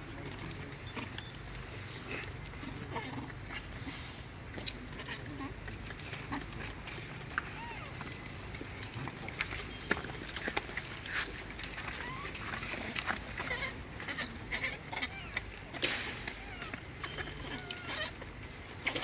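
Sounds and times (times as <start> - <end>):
high squeaky monkey calls: 16.3 - 18.2.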